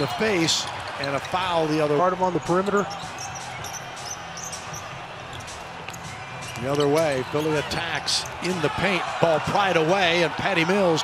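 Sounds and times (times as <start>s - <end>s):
arena noise: 0.0s - 11.0s.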